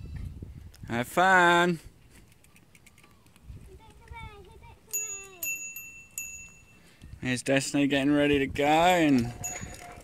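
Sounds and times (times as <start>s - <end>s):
bicycle bell ringing: 4.9s - 7.0s, 9.2s - 10.0s.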